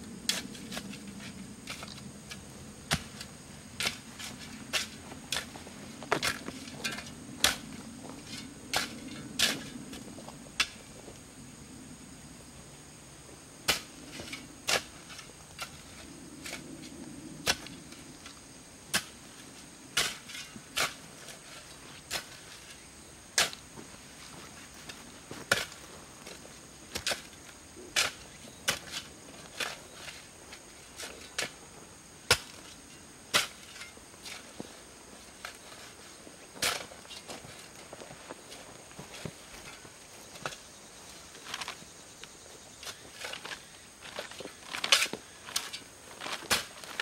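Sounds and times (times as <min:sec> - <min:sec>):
shovel chopping into soil: 0:25.4 - 0:25.8, 0:42.8 - 0:47.0.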